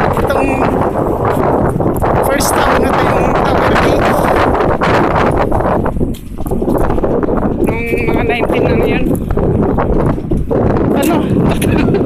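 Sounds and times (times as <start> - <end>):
wind buffeting microphone: 0.0 - 12.0
footsteps on paving: 4.9 - 7.6.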